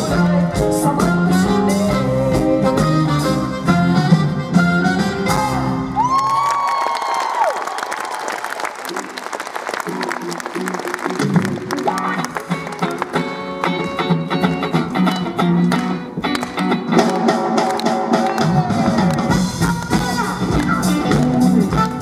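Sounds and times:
accordion: 0:00.0 - 0:05.6
band playing: 0:00.0 - 0:06.5, 0:08.5 - 0:22.0
audience applauding: 0:06.0 - 0:14.5, 0:15.1 - 0:21.5
electric guitar: 0:10.0 - 0:22.0.

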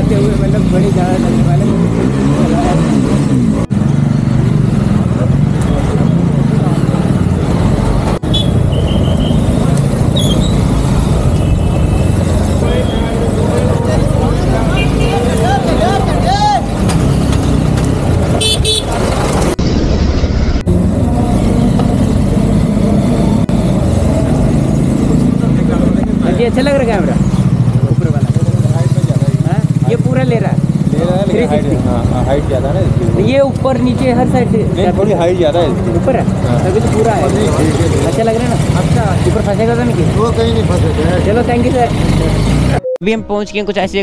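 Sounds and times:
engine and road rumble: 0:00.0 - 0:43.0
vehicle horns tooting: 0:08.2 - 0:09.6, 0:10.2 - 0:13.4, 0:14.6 - 0:16.7, 0:18.3 - 0:19.1.

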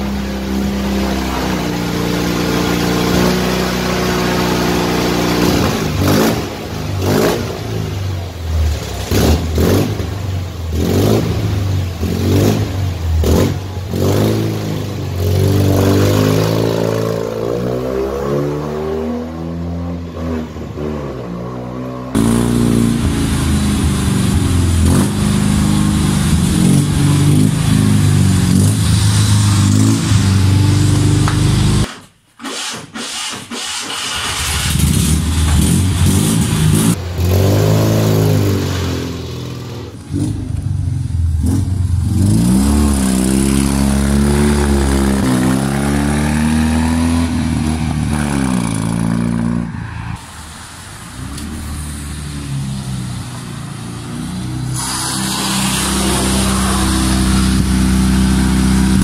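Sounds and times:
small car engine revving: 0:00.0 - 0:31.9, 0:32.5 - 0:40.6, 0:41.3 - 0:49.7, 0:51.2 - 0:59.0.

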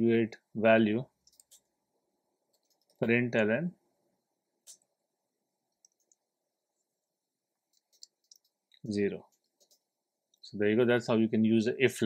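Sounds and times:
computer keyboard typing: 0:01.2 - 0:01.7, 0:02.5 - 0:03.0, 0:05.8 - 0:06.2, 0:07.7 - 0:09.9.

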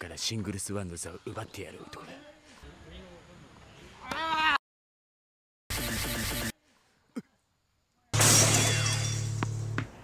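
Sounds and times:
glass shattering crash: 0:08.2 - 0:09.6.

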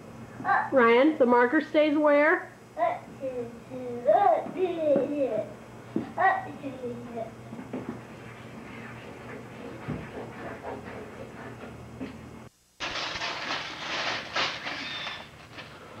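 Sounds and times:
steady low hum: 0:00.0 - 0:14.4
paper crackling and rustling: 0:12.8 - 0:15.9.

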